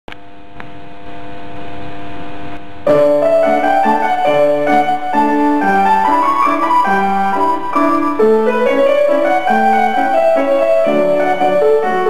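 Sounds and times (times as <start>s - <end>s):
acoustic piano chords and melody: 2.8s - 12.0s.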